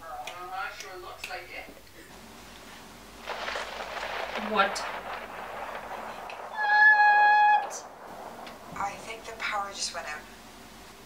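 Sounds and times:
faint hiss: 0.0s - 11.0s
loud steady pitched tone: 6.3s - 11.0s.

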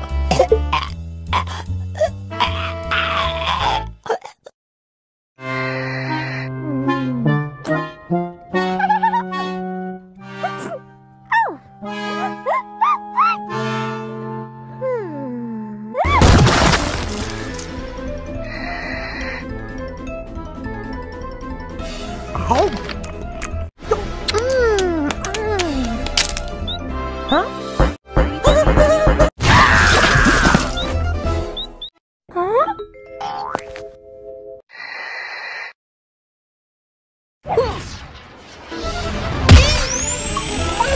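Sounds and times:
cartoon music with held chords: 5.4s - 16.0s, 17.6s - 29.3s, 30.4s - 34.6s
character humming: 5.7s - 7.5s
cartoon eggshell cracking: 24.3s - 26.8s.

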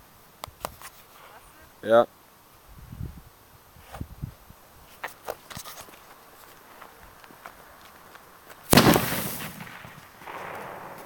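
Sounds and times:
faint firework pops: 8.7s - 11.0s
loud firework bang: 8.7s - 11.0s.

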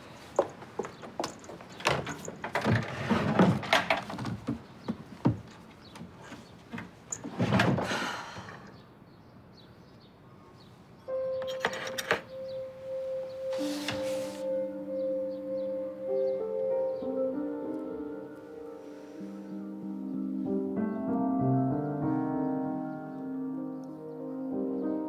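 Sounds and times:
soft background music: 11.0s - 25.0s.

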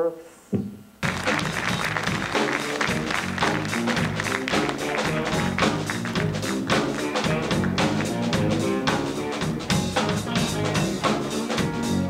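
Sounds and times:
music with fast steady beat: 1.0s - 12.0s.

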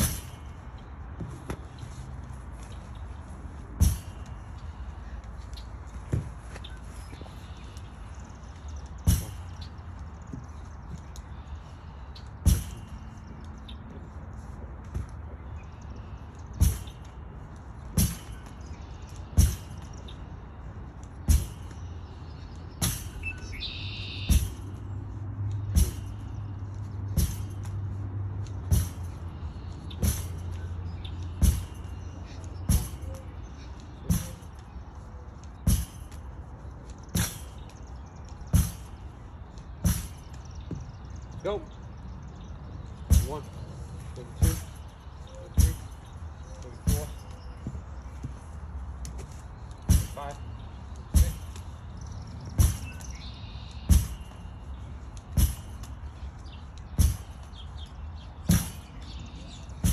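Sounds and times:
bird chirping: 0.0s - 59.9s
ball smacking against rebounder: 9.0s - 9.5s, 17.9s - 18.5s, 19.2s - 19.9s, 24.3s - 24.7s, 25.6s - 26.3s, 27.1s - 27.8s, 28.6s - 29.1s, 34.0s - 34.6s, 35.6s - 36.1s, 38.5s - 39.0s, 39.8s - 41.0s, 49.8s - 50.4s, 52.5s - 53.1s, 53.8s - 54.4s, 57.0s - 57.4s, 58.5s - 58.9s.

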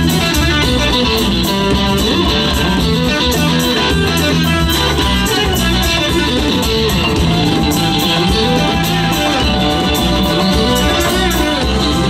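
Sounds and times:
bass guitar: 0.0s - 12.0s
drum kit steady beat: 0.0s - 12.0s
electric guitar: 0.0s - 12.0s.

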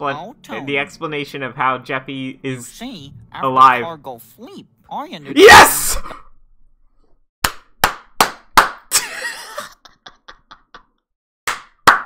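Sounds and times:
man laughing hard: 8.9s - 10.9s.

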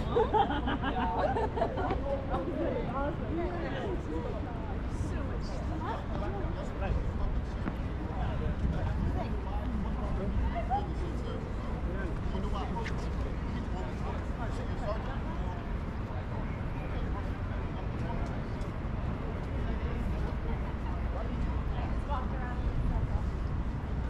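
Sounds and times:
traffic rumble: 0.0s - 24.0s.

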